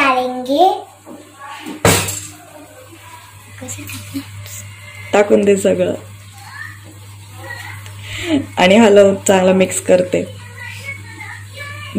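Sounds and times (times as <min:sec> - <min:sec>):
steady low hum: 0:01.9 - 0:11.9.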